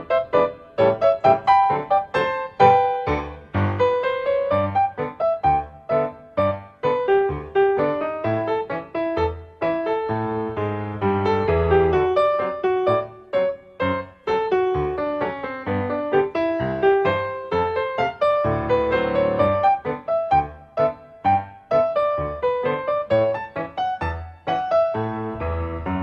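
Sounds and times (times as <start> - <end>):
solo piano music: 0.0 - 26.0.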